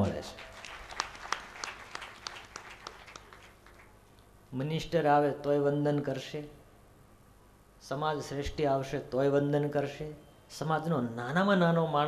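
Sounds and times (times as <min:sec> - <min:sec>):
scattered hand claps: 0:00.4 - 0:04.0.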